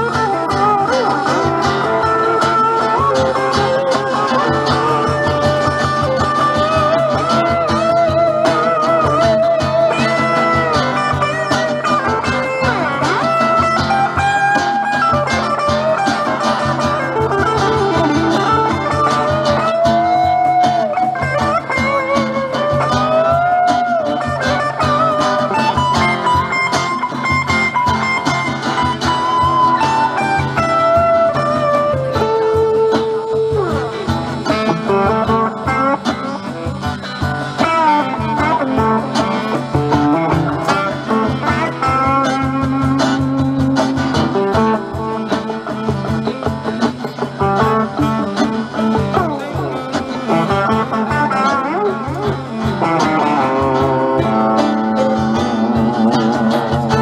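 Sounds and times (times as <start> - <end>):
blues band rhythm: 0.0 - 57.0
electric guitar solo: 0.0 - 57.0.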